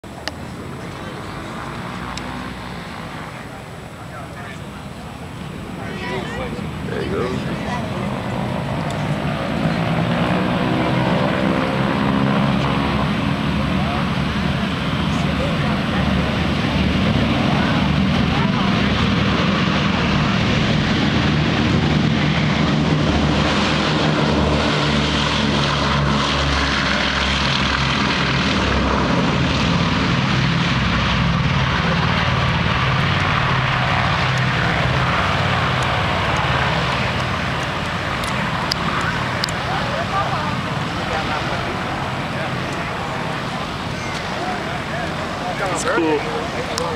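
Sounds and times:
propeller aircraft engines droning: 0:00.0 - 0:46.9.

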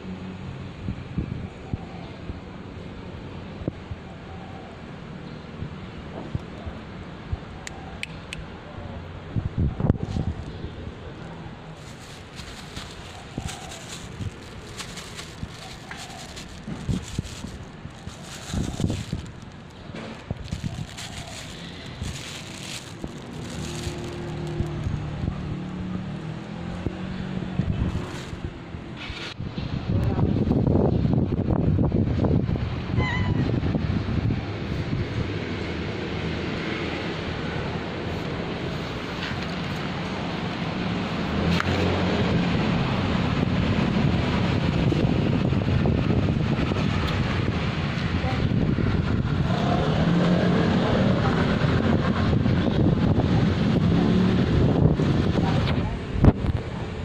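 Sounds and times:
traffic noise: 0:00.0 - 0:57.0
wind rumbling on microphone: 0:00.2 - 0:04.7, 0:09.1 - 0:57.0.

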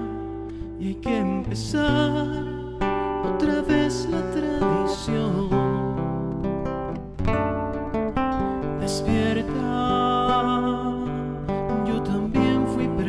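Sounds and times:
man singing: 0:00.0 - 0:06.3, 0:08.7 - 0:13.0
acoustic guitar strumming: 0:00.0 - 0:13.0.

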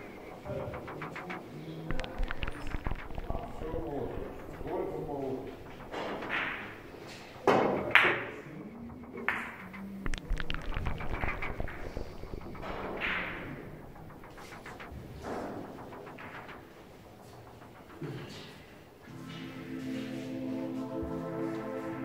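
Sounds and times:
balls rolling and knocking: 0:00.1 - 0:17.3
billiard balls clicking: 0:01.9 - 0:14.4.

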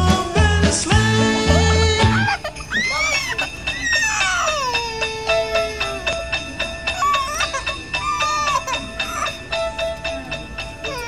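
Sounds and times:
toddler crying and whining: 0:01.4 - 0:09.5, 0:10.8 - 0:11.0.

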